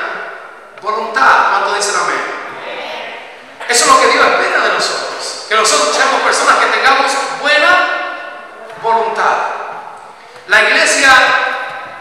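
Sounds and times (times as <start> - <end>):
man preaching into a microphone: 0.0 - 2.5, 3.6 - 11.9.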